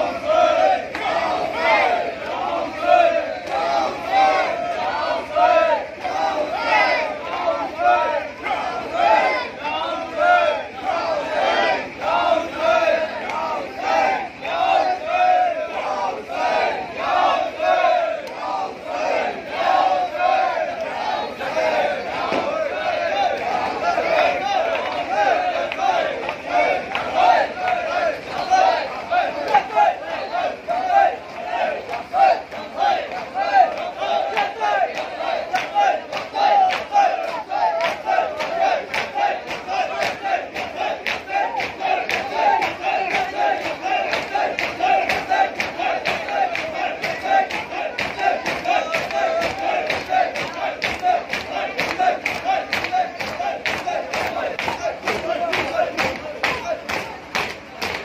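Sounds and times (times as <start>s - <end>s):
crowd of men chanting: 0.0s - 58.0s.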